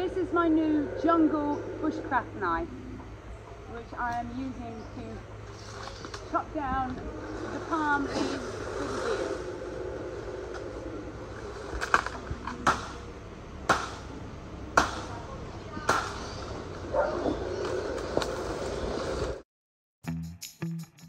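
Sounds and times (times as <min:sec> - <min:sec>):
knife chopping palm fronds: 0:13.7 - 0:14.1, 0:14.8 - 0:15.2.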